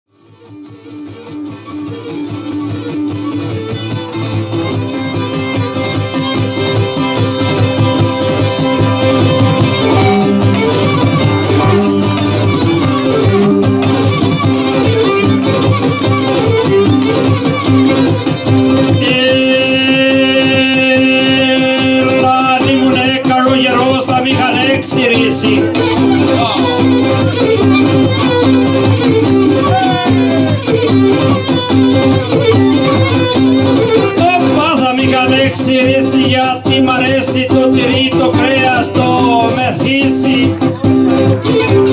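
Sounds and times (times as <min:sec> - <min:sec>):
plucked strings accompaniment: 0:00.1 - 0:41.9
lyra and lute instrumental: 0:00.2 - 0:41.9.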